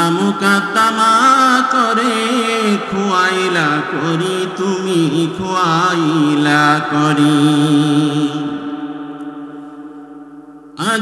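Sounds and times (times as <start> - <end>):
man singing a long note: 0.0 - 9.9, 10.7 - 11.0.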